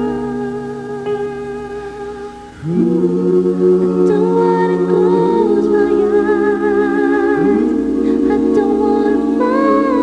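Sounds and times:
acoustic guitar: 0.0 - 10.0.

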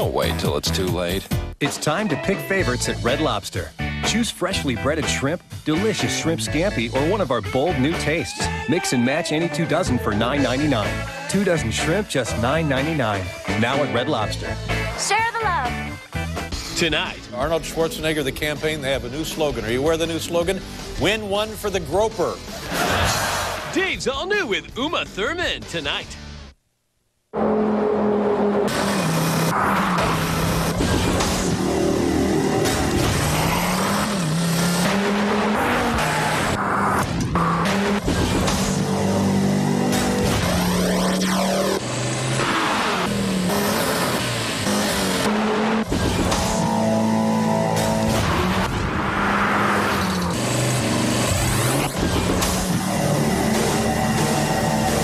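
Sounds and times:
music: 0.0 - 26.6, 30.2 - 33.4, 36.6 - 41.8, 45.9 - 48.9, 51.3 - 55.0
car engine revving hard: 27.4 - 55.0.

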